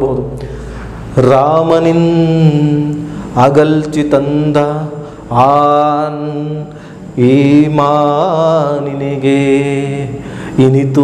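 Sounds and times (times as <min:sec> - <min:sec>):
man chanting verse: 0:01.2 - 0:11.0.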